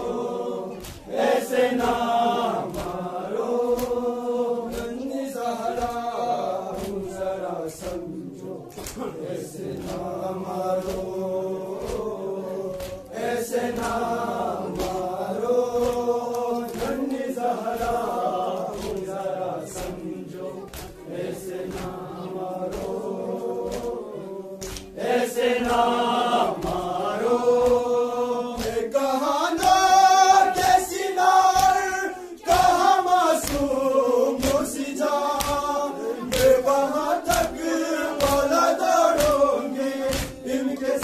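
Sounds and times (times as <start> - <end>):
men chanting in unison: 0.0 - 41.0.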